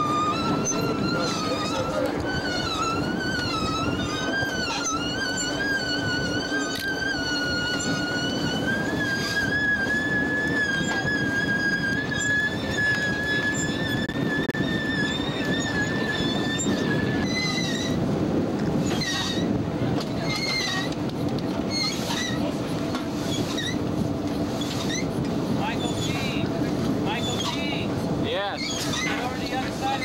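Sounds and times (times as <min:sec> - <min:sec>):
long high whistle-like tone: 0:00.0 - 0:18.0.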